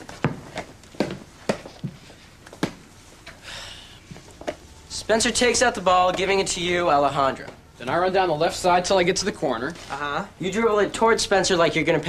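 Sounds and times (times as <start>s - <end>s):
basketball bouncing on floor: 0.2s - 2.0s.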